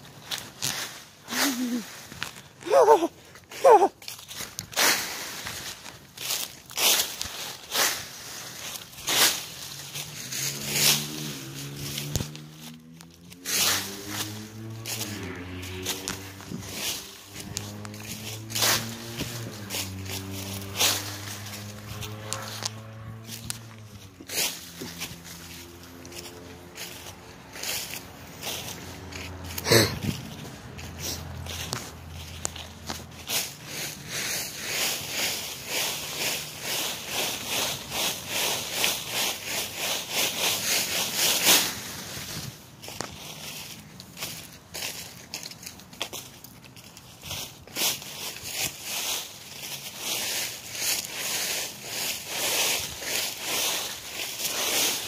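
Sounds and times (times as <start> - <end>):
dry leaves rustling and crunching: 0.0 - 55.0.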